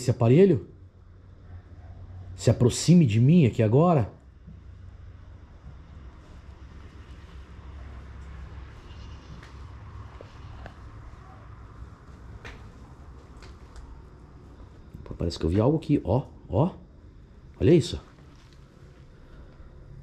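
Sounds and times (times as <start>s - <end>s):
faint low rumble: 0.0s - 20.0s.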